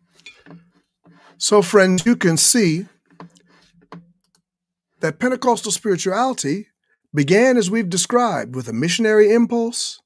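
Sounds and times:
person speaking: 0:01.4 - 0:03.3, 0:05.0 - 0:10.0.

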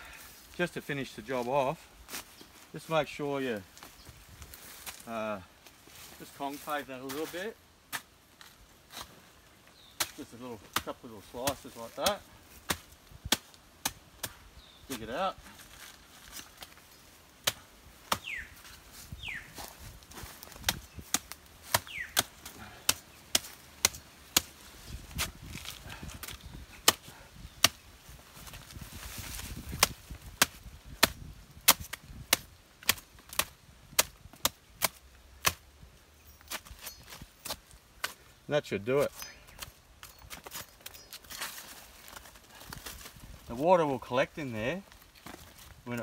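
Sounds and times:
machete chopping into stem: 0:20.6 - 0:24.5, 0:26.2 - 0:27.8, 0:29.6 - 0:35.6.

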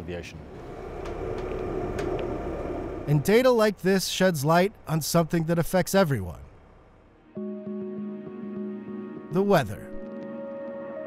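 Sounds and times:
faint even hum: 0:00.3 - 0:05.0
steady low rumble: 0:00.4 - 0:05.4.

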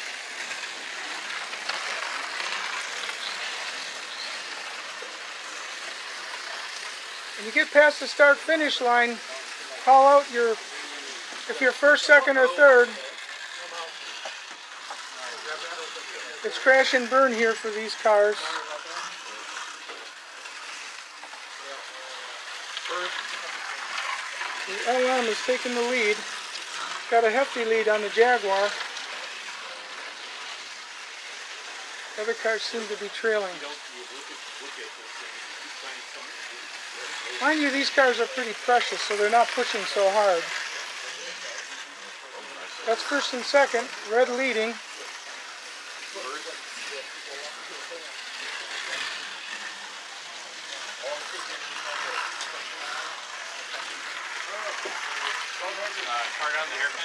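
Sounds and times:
faint voices: 0:00.0 - 0:57.0
slot car motors whirring: 0:00.0 - 0:57.0
faint chatter: 0:00.4 - 0:27.2, 0:28.4 - 0:57.0.

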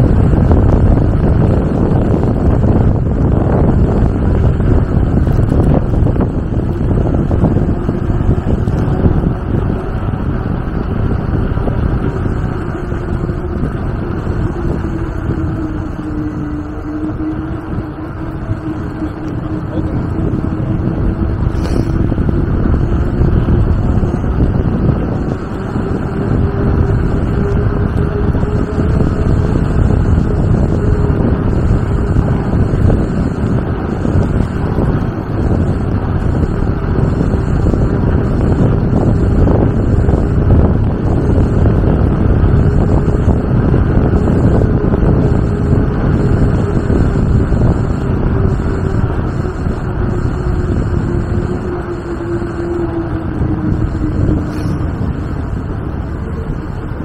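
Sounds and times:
faint hum: 0:00.0 - 0:57.0
wind buffeting microphone: 0:00.0 - 0:57.0.

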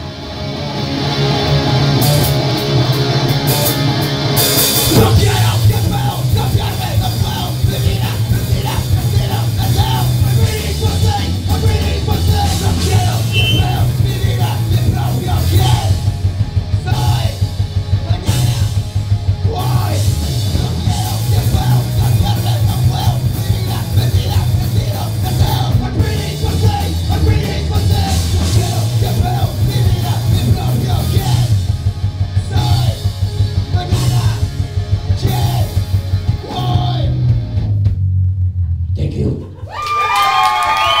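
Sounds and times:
live punk band playing: 0:00.0 - 0:38.9
person singing: 0:04.9 - 0:16.1.

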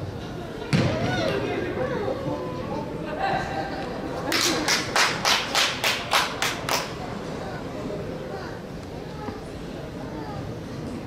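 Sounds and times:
hand claps in a large hall: 0:04.2 - 0:07.1.

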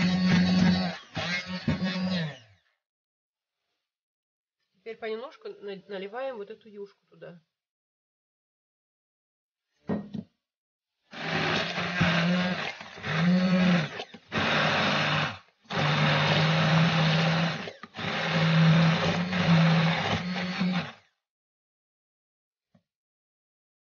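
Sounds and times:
immersion blender running: 0:00.0 - 0:02.6, 0:11.1 - 0:21.1.

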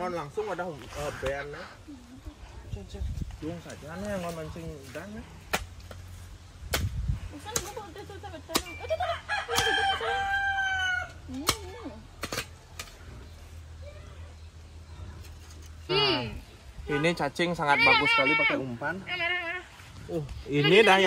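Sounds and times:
rooster crowing: 0:09.0 - 0:11.2.

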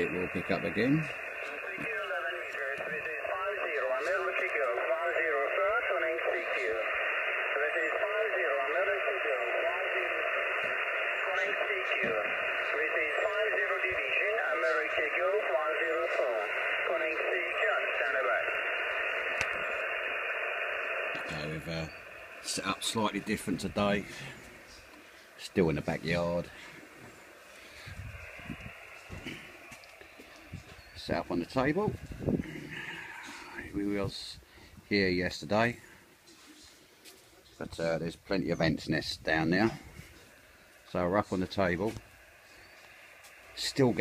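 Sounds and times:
tinny radio speech: 0:00.0 - 0:26.8, 0:27.6 - 0:35.8, 0:42.9 - 0:44.0
static hiss: 0:00.0 - 0:44.0.

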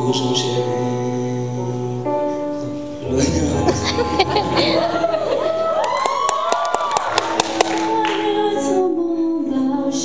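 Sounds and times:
man singing into a microphone: 0:00.0 - 0:04.5
backing track music: 0:00.0 - 0:10.0.

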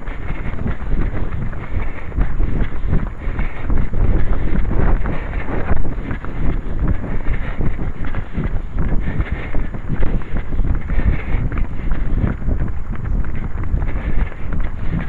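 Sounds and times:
jogging stride thuds: 0:00.0 - 0:15.0
wind buffeting microphone: 0:00.0 - 0:15.0.

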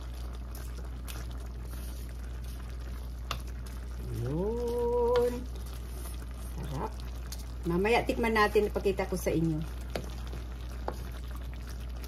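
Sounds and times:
sauce simmering in a wok: 0:00.0 - 0:12.0
steady low hum: 0:00.0 - 0:12.0
wooden spoon stirring: 0:00.0 - 0:12.0
person humming mmm: 0:04.0 - 0:05.5.

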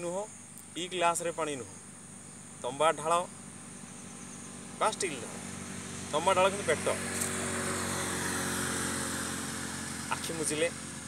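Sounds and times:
motorcycle engine running: 0:01.8 - 0:11.0.

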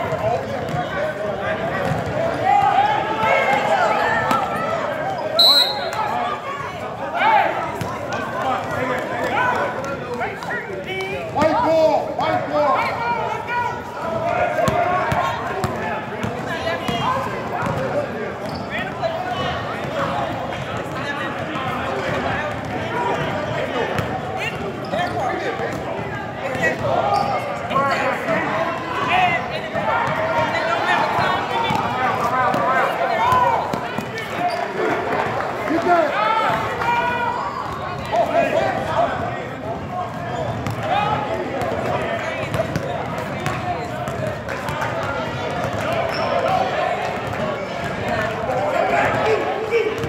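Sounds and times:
hubbub of indistinct voices: 0:00.0 - 0:50.0
basketball bouncing on gym floor: 0:01.8 - 0:02.1.

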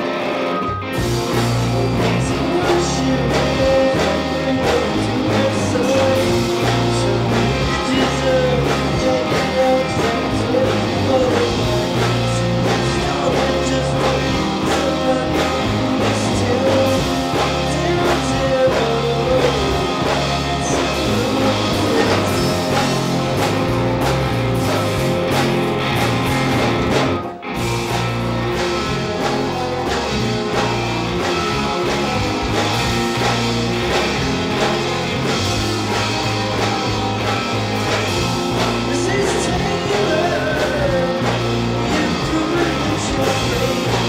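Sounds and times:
rock band playing live: 0:00.0 - 0:44.0.

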